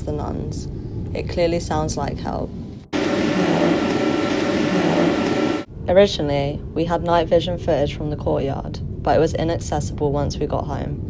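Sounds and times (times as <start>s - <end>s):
loud steady hiss: 3.0s - 5.7s.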